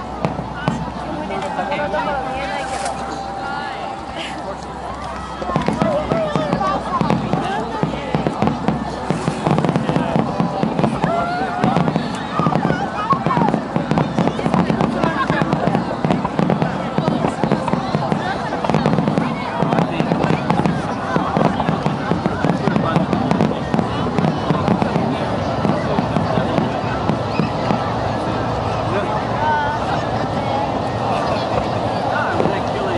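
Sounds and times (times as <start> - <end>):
people's voices: 0.0 - 32.9.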